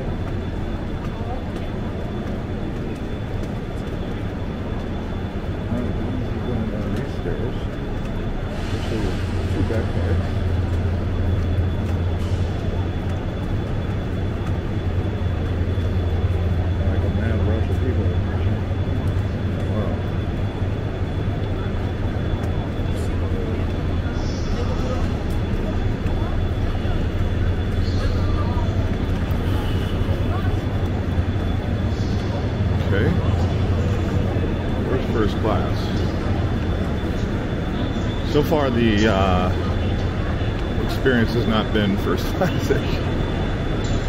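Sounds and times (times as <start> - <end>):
passengers' voices: 0.0 - 44.0
train humming: 0.0 - 44.0.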